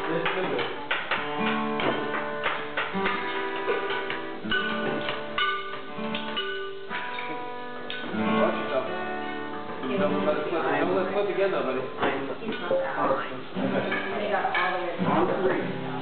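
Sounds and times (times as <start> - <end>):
guitar plucked notes and chords: 0.0 - 16.0.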